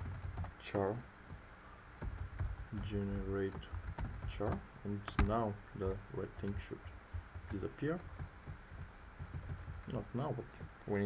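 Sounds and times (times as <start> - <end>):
typing on computer keyboard: 0.0 - 0.6, 2.0 - 4.6, 7.2 - 10.0.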